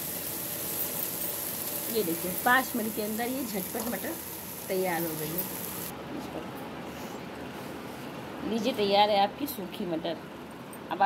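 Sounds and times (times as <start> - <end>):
peas sizzling in a pan: 0.0 - 5.9.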